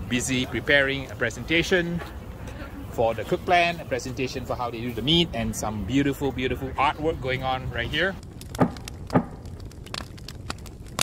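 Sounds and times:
grill fire crackling: 0:00.0 - 0:11.0.

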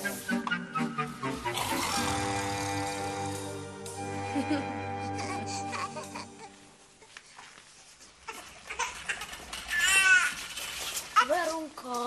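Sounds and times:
rustling and knocks of movement: 0:07.0 - 0:12.0.

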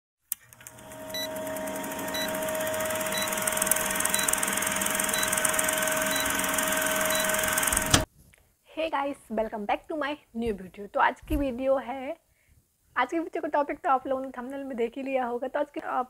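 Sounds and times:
film projector rattling and humming: 0:00.4 - 0:08.1
short high beeps: 0:07.0 - 0:07.5.

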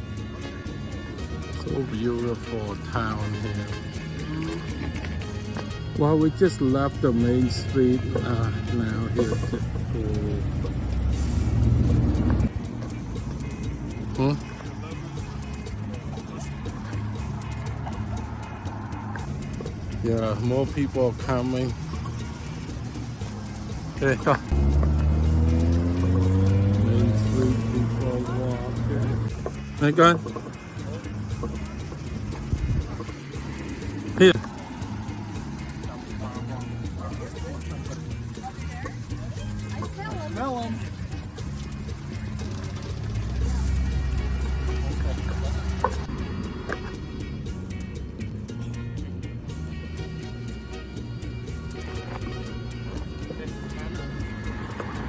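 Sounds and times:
cars driving past: 0:00.0 - 0:55.0.

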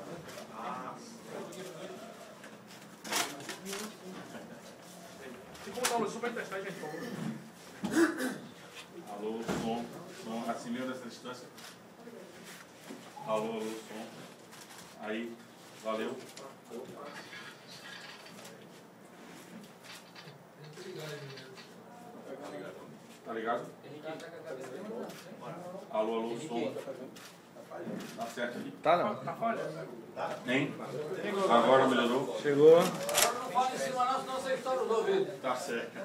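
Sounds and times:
people talking quietly: 0:00.0 - 0:36.0.

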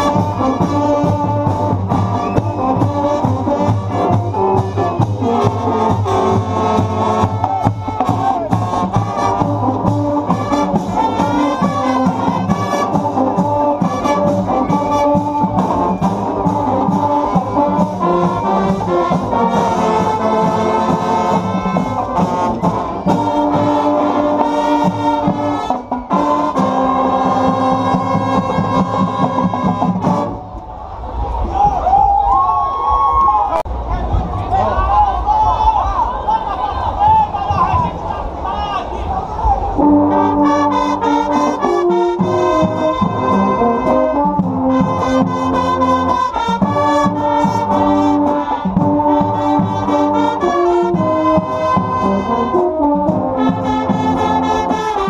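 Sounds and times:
steady drum beat: 0:00.0 - 0:30.4, 0:41.8 - 0:55.0
brass band playing: 0:00.0 - 0:30.7, 0:37.0 - 0:55.0
voices: 0:00.0 - 0:32.0, 0:33.5 - 0:52.6.

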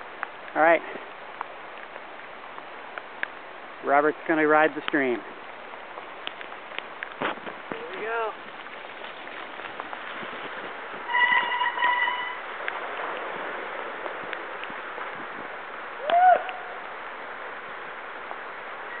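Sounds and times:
creek rushing: 0:00.0 - 0:19.0.

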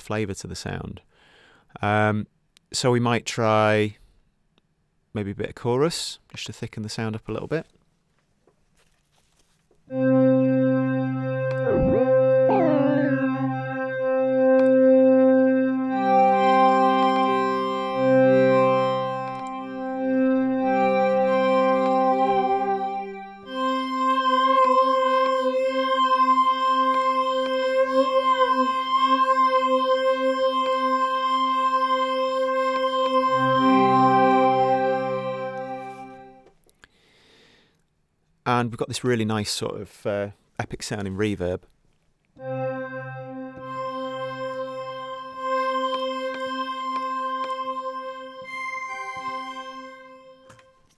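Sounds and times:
swooping synth sweep: 0:09.9 - 0:21.7
synthesizer pad chords: 0:09.9 - 0:36.5, 0:42.4 - 0:50.7.

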